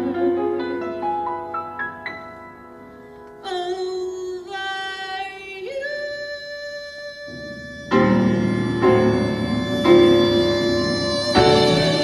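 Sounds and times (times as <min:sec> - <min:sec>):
woman singing unaccompanied: 0:03.4 - 0:12.0.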